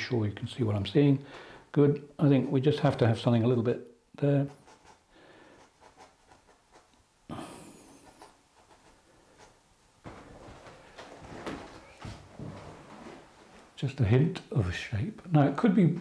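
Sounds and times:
brush scratching on wood panel: 0:04.4 - 0:07.0
breath through nose: 0:05.1 - 0:05.8.

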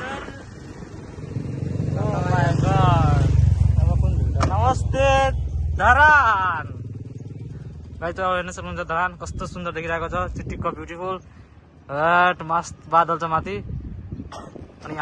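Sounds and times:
motorcycle engine passing by: 0:00.0 - 0:09.8
people talking: 0:02.0 - 0:06.8, 0:08.0 - 0:11.2.

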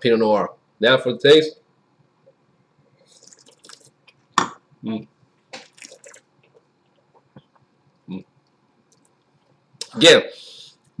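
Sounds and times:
person slurping wine: 0:03.0 - 0:04.0, 0:05.6 - 0:06.3.

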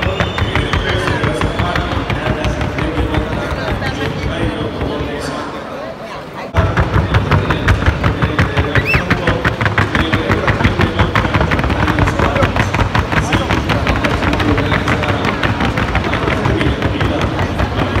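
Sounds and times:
hoofbeats on hard board: 0:00.0 - 0:05.1, 0:06.6 - 0:18.0.

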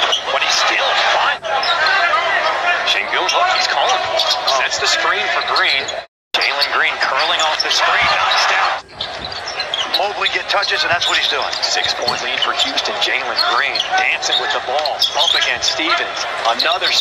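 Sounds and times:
crowd noise and voices: 0:00.0 - 0:17.0.

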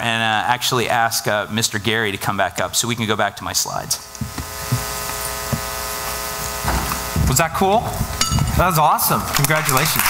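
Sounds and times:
steady electrical buzz: 0:00.0 - 0:10.0.

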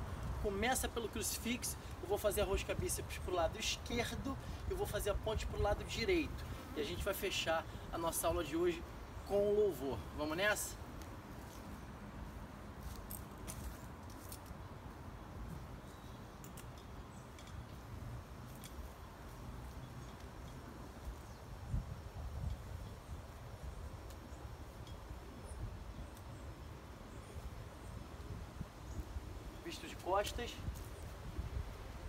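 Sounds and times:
straps and handles rustling: 0:10.4 - 0:26.7, 0:29.4 - 0:32.0
footsteps on leaves: 0:10.9 - 0:14.7.

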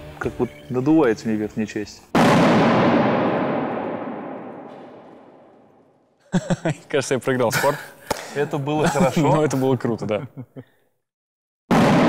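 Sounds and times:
voices: 0:00.1 - 0:02.0, 0:06.3 - 0:10.6
echoing burst in large hall: 0:02.1 - 0:06.2.

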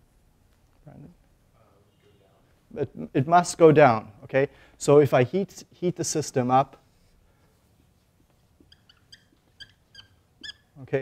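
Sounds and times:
marker squeaking on whiteboard: 0:08.2 - 0:11.0.

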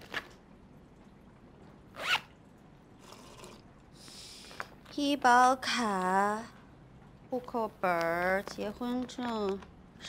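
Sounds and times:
zipper pulled open: 0:01.9 - 0:02.3.

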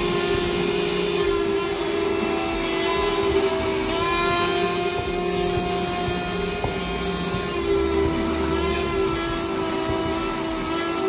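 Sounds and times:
car wash machinery drone: 0:00.0 - 0:11.0.

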